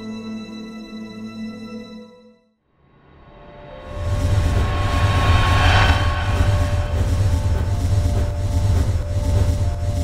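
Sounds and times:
whoosh: 3.7s - 9.4s
deep low rumble: 3.9s - 9.9s
held drone tones: 3.9s - 10.0s.

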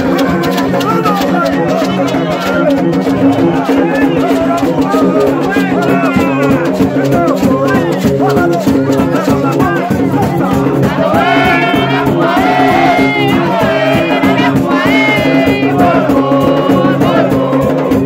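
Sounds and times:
drums: 0.0s - 18.0s
shaken rattle: 0.0s - 18.0s
voices singing and calling: 0.0s - 18.0s.

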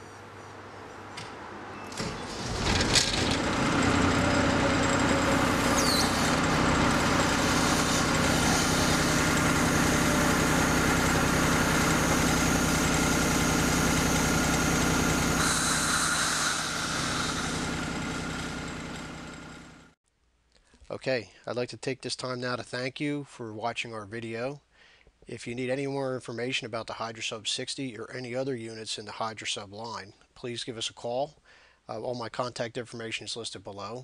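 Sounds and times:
engine running under load: 1.0s - 20.0s.

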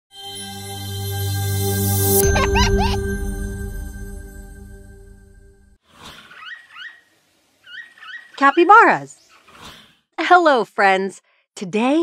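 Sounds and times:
capybara squeaking: 6.1s - 9.8s.

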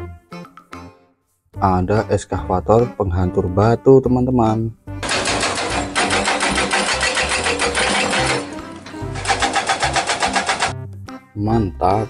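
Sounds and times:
hydraulic rock breaker hammering rock: 5.0s - 10.8s.

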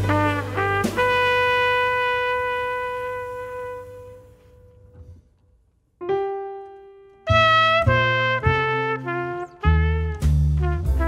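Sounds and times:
brass horn playing: 0.0s - 5.2s, 7.3s - 11.0s.

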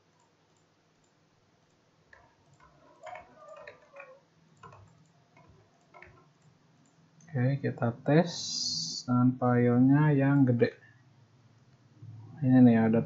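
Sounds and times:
computer keyboard typing: 0.0s - 7.0s.

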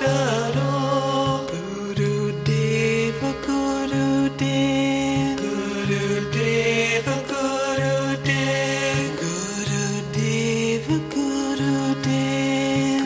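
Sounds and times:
devotional chanted singing: 0.0s - 13.0s.

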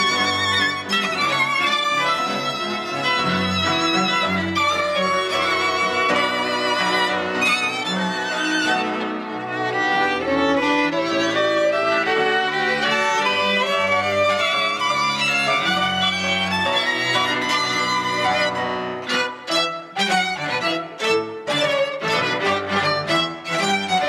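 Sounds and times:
bowed strings: 0.0s - 24.0s
piano: 0.0s - 24.0s.

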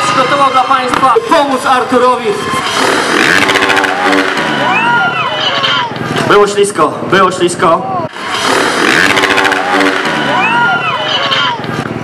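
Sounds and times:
dirt bike engine revving: 1.2s - 6.3s, 8.1s - 12.0s.

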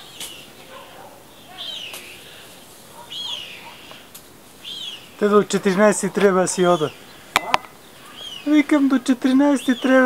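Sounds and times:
fainter lower bird chirps: 0.0s - 5.3s, 6.5s - 10.0s
bird chirping: 0.0s - 10.0s.

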